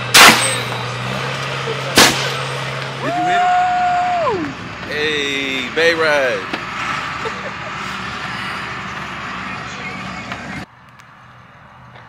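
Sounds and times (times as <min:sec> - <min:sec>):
rattly noisy rush: 0:00.0 - 0:10.7
wagon vehicle hum: 0:00.0 - 0:12.0.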